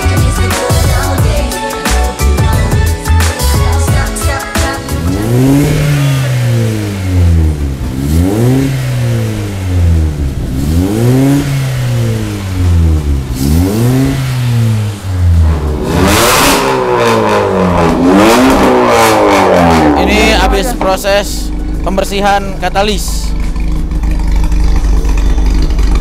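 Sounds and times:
car engine revving: 2.4s - 26.0s.

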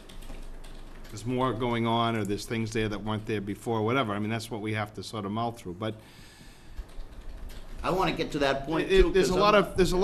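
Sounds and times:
faint typing clicks: 0.0s - 3.6s, 6.1s - 8.2s
low room hum: 0.0s - 10.0s
man speaking: 1.1s - 6.0s, 7.8s - 10.0s.

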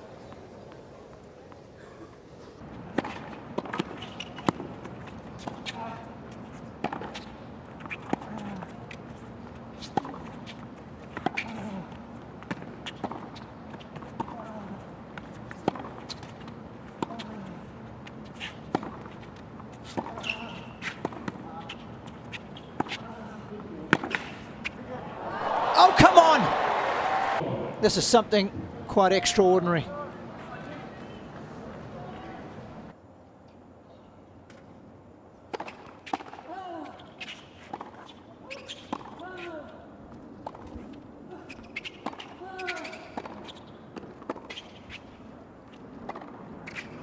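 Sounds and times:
players grunting: 25.0s - 27.8s.

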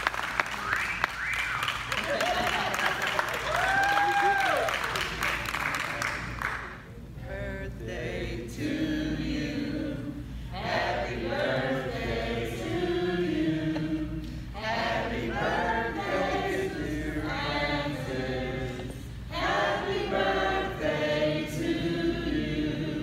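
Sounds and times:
congregation singing: 7.2s - 23.0s.

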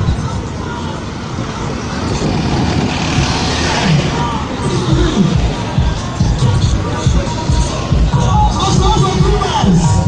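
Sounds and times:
road traffic driving past: 0.0s - 8.3s.

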